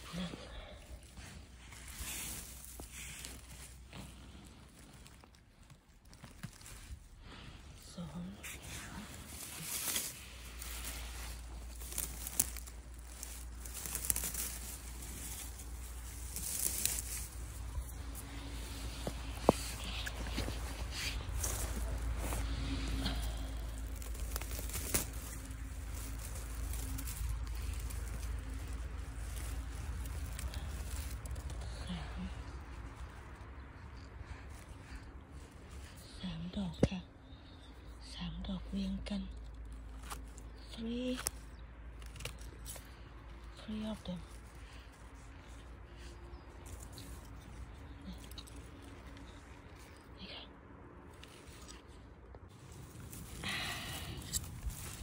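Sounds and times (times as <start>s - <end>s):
dry vegetation rustling and crackling: 0.0s - 55.0s
steady low rumble: 0.0s - 55.0s.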